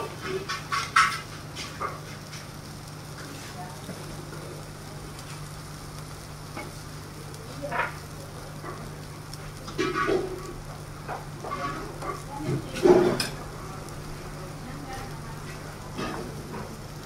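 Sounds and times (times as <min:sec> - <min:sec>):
dosas sizzling on a griddle: 0:00.0 - 0:17.0
steady low hum: 0:00.0 - 0:17.0.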